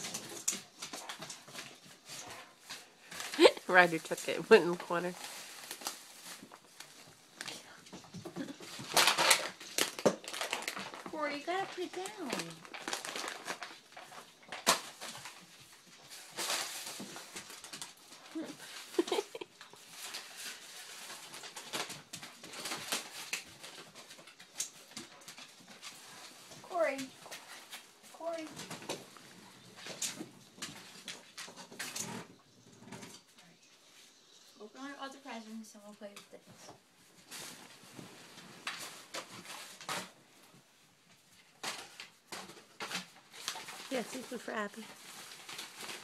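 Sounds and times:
dogs scuffling on wooden floor: 0.0 - 35.6, 36.4 - 46.0.

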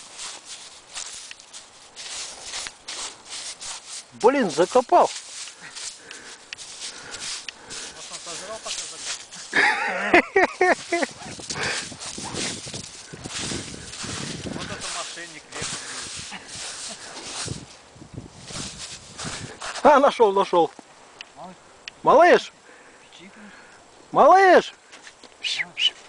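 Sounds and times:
hand scraping through crusty snow: 0.0 - 20.1.

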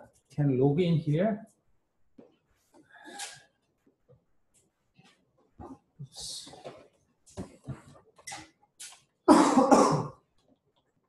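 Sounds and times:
person coughing: 9.3 - 10.2.

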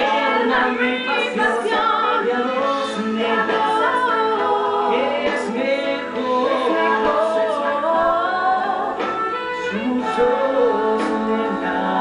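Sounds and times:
duet singing over backing music: 0.0 - 12.0.

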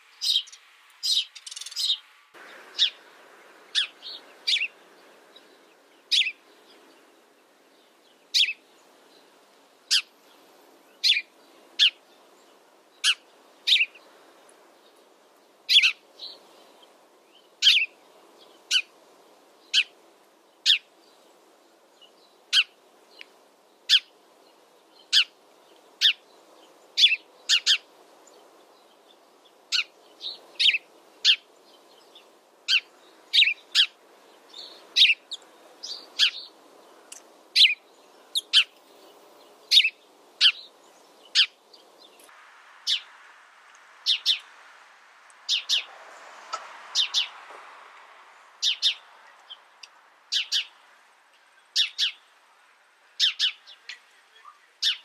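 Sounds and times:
sparrow chirping: 0.1 - 15.1, 15.7 - 19.0, 19.6 - 21.3, 21.9 - 43.2, 44.0 - 44.5, 45.4 - 45.9, 47.0 - 47.4, 48.4 - 52.4, 53.2 - 55.0.

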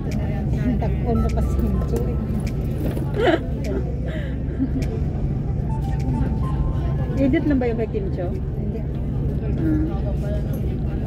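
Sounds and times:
vehicle engine and road drone: 0.0 - 11.0.

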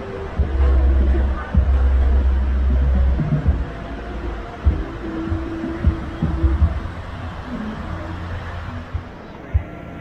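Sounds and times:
heavy low rumble: 0.0 - 10.0
steady hum: 0.0 - 10.0.

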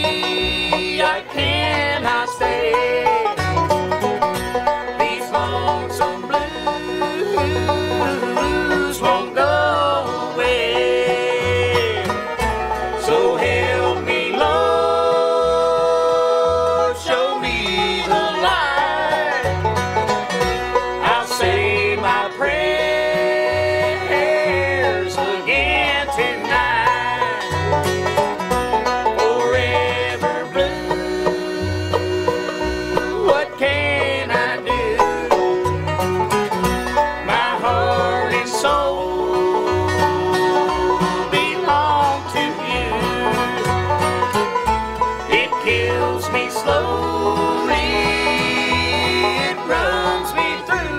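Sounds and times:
banjo: 0.0 - 50.9
bass line: 0.0 - 50.9
guitar: 0.0 - 50.9.

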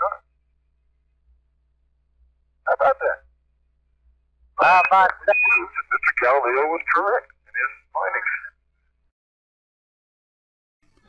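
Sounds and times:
radio voice exclamation: 2.7 - 3.2, 4.6 - 8.6.

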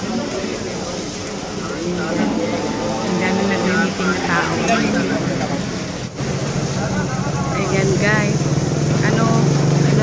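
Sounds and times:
roadside traffic: 0.0 - 10.0
woman talking: 3.0 - 5.0, 7.6 - 8.4, 9.0 - 10.0.

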